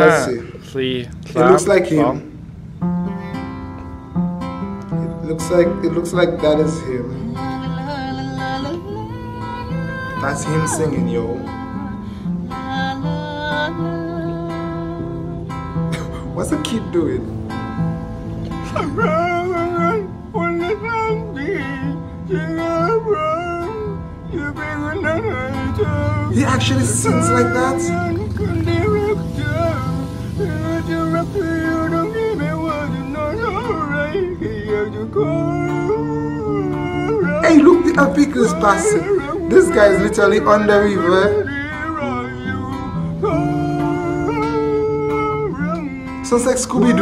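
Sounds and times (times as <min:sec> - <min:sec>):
man singing pop song: 0:00.0 - 0:00.6, 0:01.3 - 0:02.3, 0:05.3 - 0:11.7, 0:18.6 - 0:47.0
acoustic guitar: 0:00.0 - 0:47.0.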